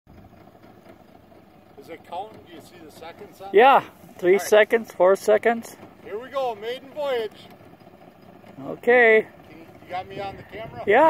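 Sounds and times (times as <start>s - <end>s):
outboard motor idling: 0.1s - 11.0s.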